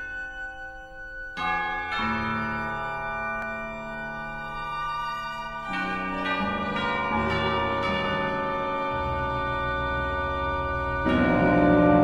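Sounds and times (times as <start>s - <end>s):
sustained ringing chord: 0.0s - 12.0s
loud struck chord: 7.0s - 12.0s.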